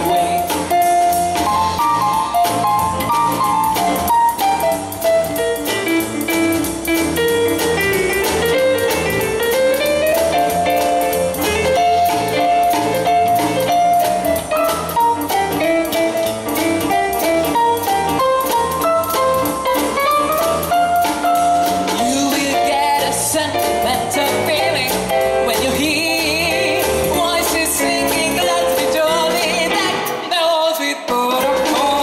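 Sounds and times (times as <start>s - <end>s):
electric keyboard melody: 0.0s - 30.2s
drum kit beat: 0.0s - 32.0s.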